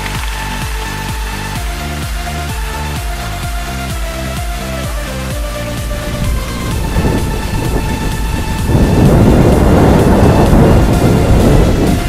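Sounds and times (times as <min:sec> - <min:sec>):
background music: 0:00.0 - 0:12.0
wind buffeting microphone: 0:05.3 - 0:12.0.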